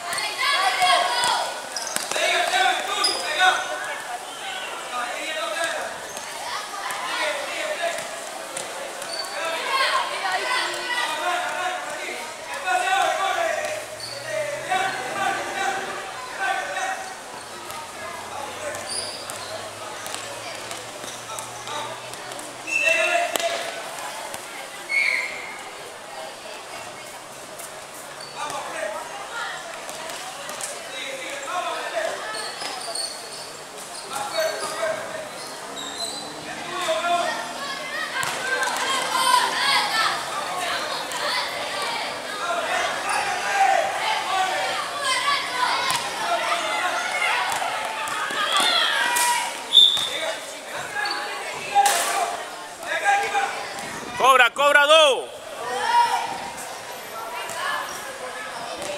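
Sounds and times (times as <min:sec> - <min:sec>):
indistinct shouting and chatter: 0:00.0 - 0:58.9.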